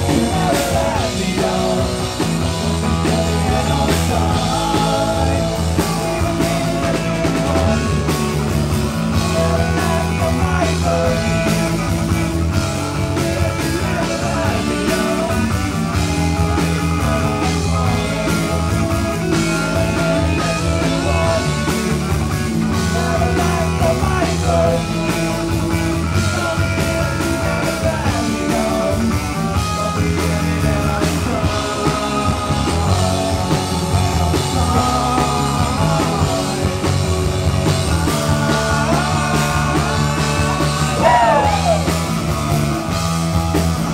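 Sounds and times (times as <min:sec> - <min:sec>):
people singing together: 0:00.0 - 0:08.5, 0:09.1 - 0:12.0, 0:13.2 - 0:22.0, 0:22.6 - 0:43.9
live rock band playing: 0:00.0 - 0:43.9.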